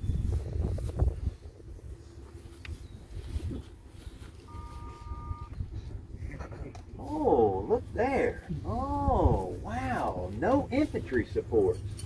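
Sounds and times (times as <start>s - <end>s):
wind buffeting microphone: 0.0s - 4.5s, 5.1s - 10.0s
two-note tone: 4.3s - 5.9s.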